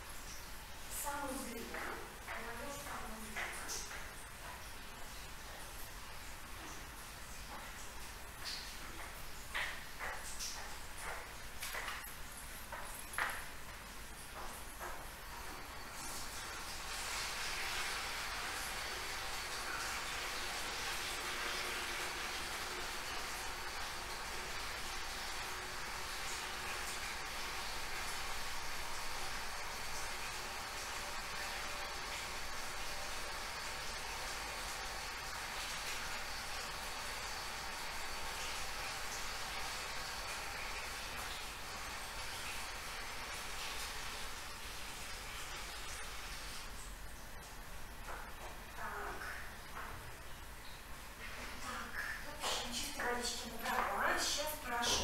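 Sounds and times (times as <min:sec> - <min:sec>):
tap water filling bucket: 0:00.0 - 0:55.0.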